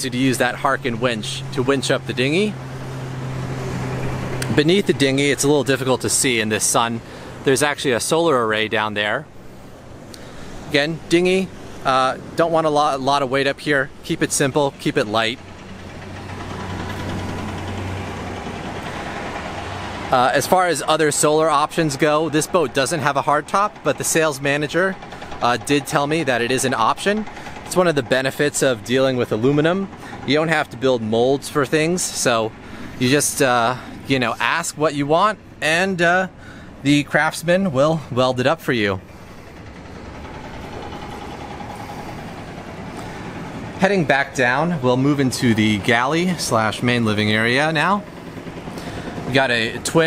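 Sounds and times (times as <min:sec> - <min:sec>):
engine idling: 0:00.0 - 0:50.0.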